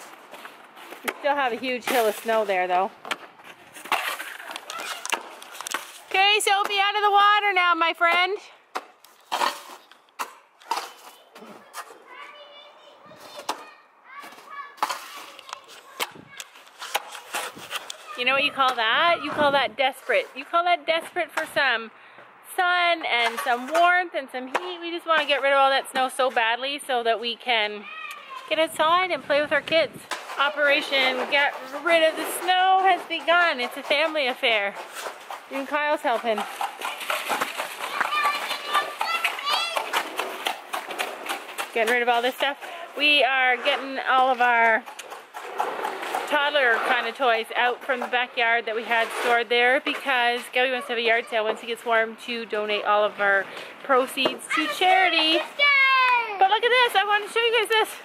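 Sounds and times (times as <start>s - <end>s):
snow tools scraping on ice: 0.0s - 8.3s, 9.1s - 10.0s, 14.2s - 20.8s, 23.1s - 24.0s, 28.2s - 58.0s
girls squealing and calling out: 4.3s - 5.3s, 27.7s - 28.6s, 36.8s - 40.3s, 54.4s - 56.6s
children's voices: 4.4s - 5.3s, 10.7s - 16.7s, 17.9s - 18.5s, 27.7s - 28.6s, 36.8s - 40.3s, 50.6s - 51.9s, 54.3s - 56.6s.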